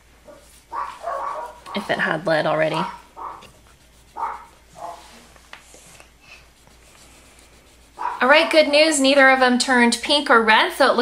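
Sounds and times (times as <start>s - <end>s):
swab scrubbing on wood: 0.4s - 8.8s.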